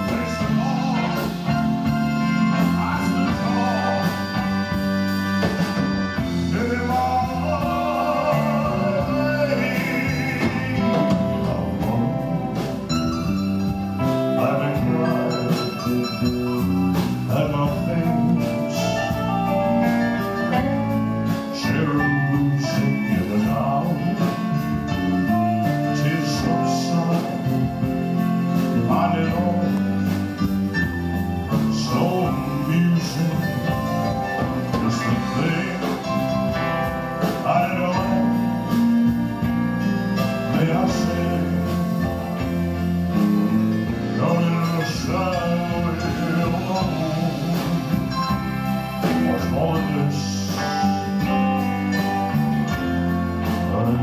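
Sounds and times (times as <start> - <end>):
bass guitar: 0.0 - 54.0
drums: 0.0 - 54.0
electric guitars: 0.0 - 54.0
man singing: 0.0 - 54.0.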